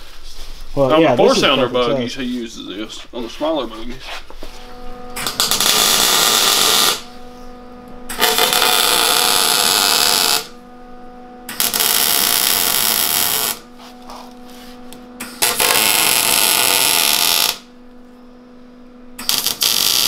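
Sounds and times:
welder hum: 0.7s - 20.0s
welding arc crackle: 5.0s - 7.2s, 8.0s - 10.6s, 11.5s - 18.0s, 19.2s - 20.0s.

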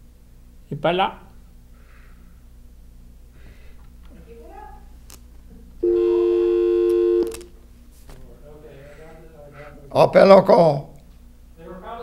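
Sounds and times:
telephone dial tone: 5.8s - 7.5s.

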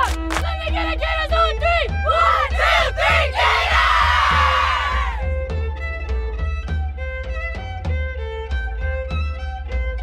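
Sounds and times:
background music with bass: 0.0s - 10.0s
team shouting a chant: 0.7s - 5.2s.

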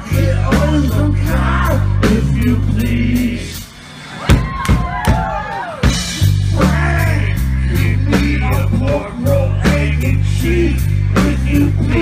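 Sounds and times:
rock band playing loudly: 0.0s - 12.0s.

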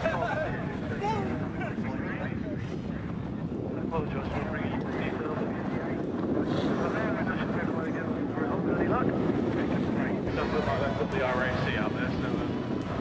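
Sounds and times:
people talking: 0.0s - 3.1s, 3.7s - 12.6s
wind on microphone: 0.0s - 13.0s.

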